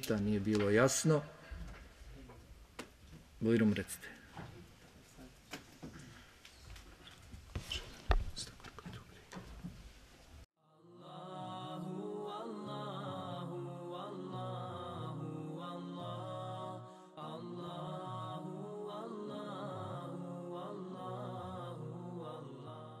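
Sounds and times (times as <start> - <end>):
voices chanting slow melody: 10.7 - 23.0.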